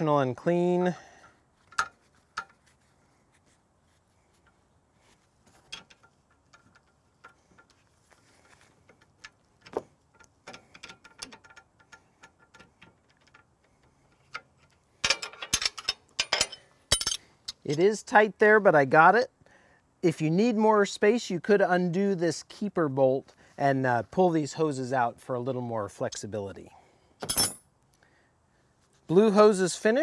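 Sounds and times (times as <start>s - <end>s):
metallic clicks of wrenches: 1.2s - 2.6s, 5.5s - 17.9s
metal clinking: 14.2s - 17.8s, 27.2s - 27.7s.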